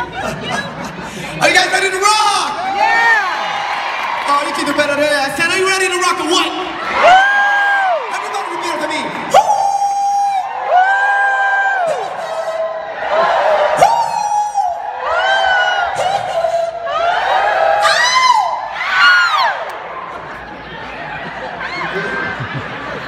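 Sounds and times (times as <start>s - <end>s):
crowd cheering and yelling: 1.3s - 23.0s
man whooping into microphone: 9.3s - 19.6s.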